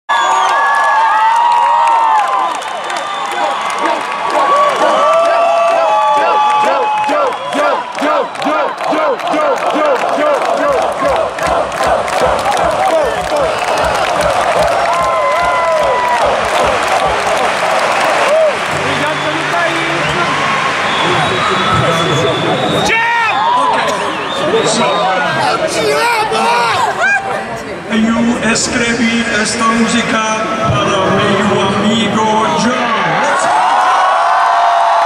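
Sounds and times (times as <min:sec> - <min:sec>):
crowd cheering and chanting: 0:00.1 - 0:35.0
rhythmic low thumping: 0:10.2 - 0:18.9.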